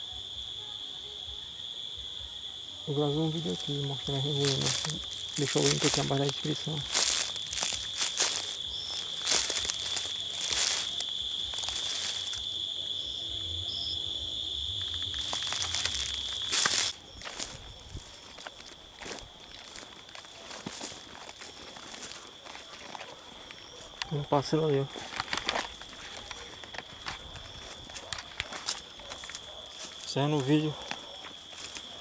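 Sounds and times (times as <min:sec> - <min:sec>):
insect trill: 0:00.0 - 0:32.0
footsteps crunching through leaves: 0:02.9 - 0:12.8, 0:14.3 - 0:32.0.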